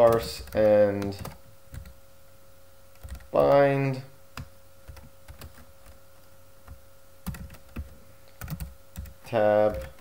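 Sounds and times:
computer keyboard typing: 0:00.0 - 0:02.0, 0:02.9 - 0:03.7, 0:04.4 - 0:10.0.

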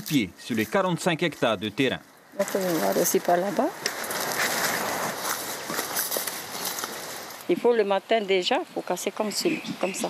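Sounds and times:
leaves and twigs rustling: 0:00.0 - 0:10.0.

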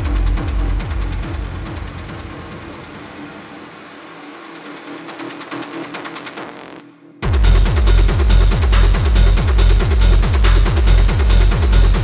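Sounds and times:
industrial techno: 0:00.0 - 0:12.0
rapid hi-hat ticks: 0:07.4 - 0:12.0.

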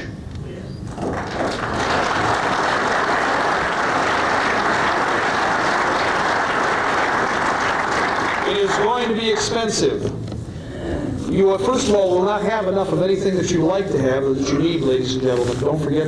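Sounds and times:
audience applauding: 0:00.9 - 0:09.7.

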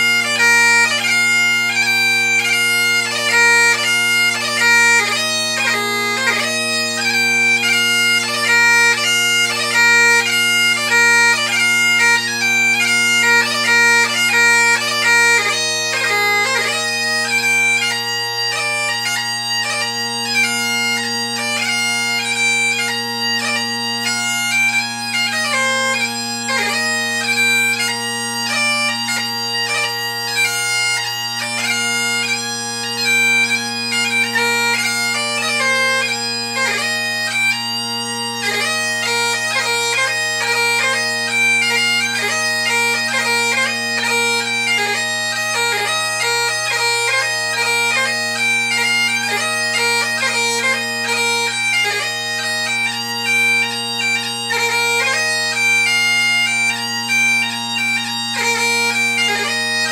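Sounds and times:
bagpipe chanter melody: 0:00.0 - 0:59.9
bagpipe drones: 0:00.0 - 0:59.9.

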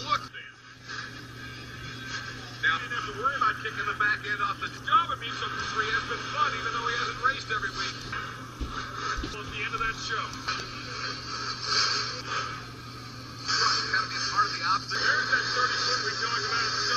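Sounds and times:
indistinct commentary: 0:00.0 - 0:16.9
steady low hum: 0:00.0 - 0:16.9
music from tv speaker: 0:04.9 - 0:12.6.

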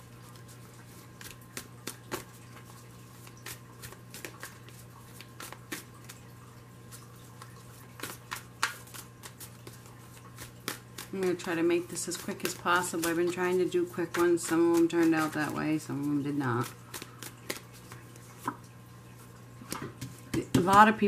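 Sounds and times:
cards being shuffled: 0:00.3 - 0:06.2, 0:07.3 - 0:18.6.

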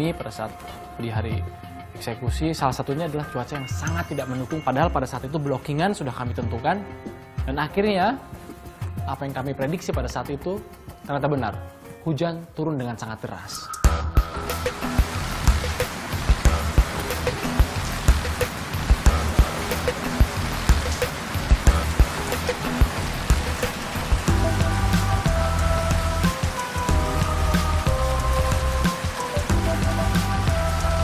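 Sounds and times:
background music with bass pulse: 0:13.4 - 0:31.0
heavy rain falling: 0:14.2 - 0:31.0.

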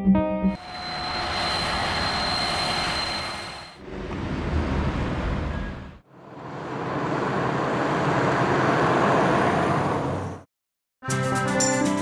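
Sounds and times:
keyboard background music: 0:00.0 - 0:00.6, 0:11.0 - 0:12.0
thin high whine: 0:00.6 - 0:03.8.

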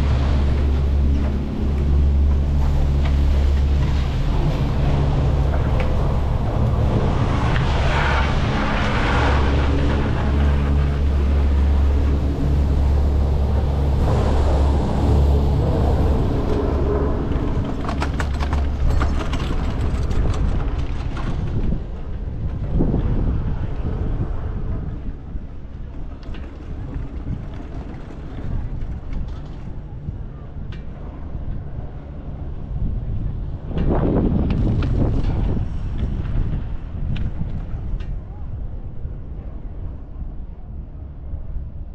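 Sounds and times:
chairlift machinery humming: 0:00.0 - 0:23.1
wind noise: 0:00.0 - 0:41.9
clatter of clicks: 0:17.3 - 0:21.7.

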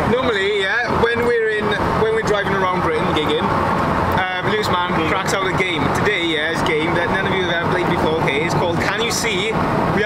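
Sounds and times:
man talking: 0:00.0 - 0:10.0
road and engine noise: 0:00.0 - 0:10.0.

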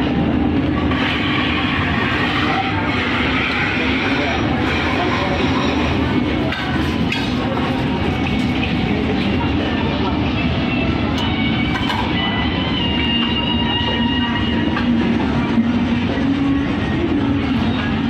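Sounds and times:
indistinct voices: 0:00.0 - 0:18.0
mall background noise: 0:00.0 - 0:18.0.

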